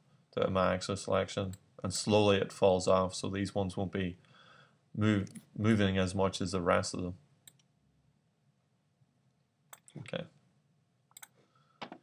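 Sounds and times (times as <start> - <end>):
computer mouse click: 11.1 - 12.0.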